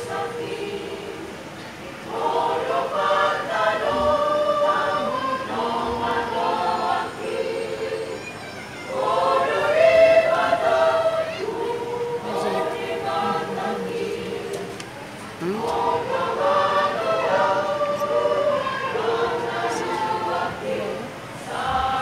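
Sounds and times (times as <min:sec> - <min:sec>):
church choir singing: 0:00.0 - 0:22.0.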